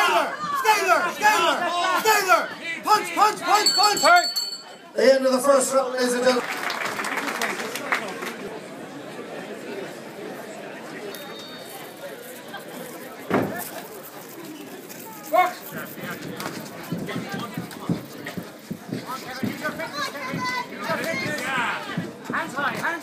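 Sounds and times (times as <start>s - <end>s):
crowd chatter: 0.0s - 23.0s
thump: 13.3s - 13.7s.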